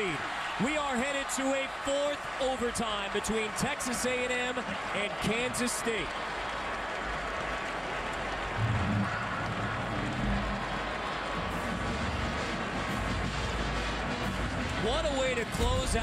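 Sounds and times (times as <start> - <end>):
stadium crowd cheering: 0.0 - 16.0.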